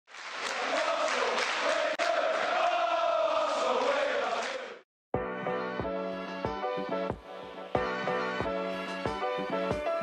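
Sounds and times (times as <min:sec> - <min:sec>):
football crowd chanting: 0:00.4 - 0:04.8.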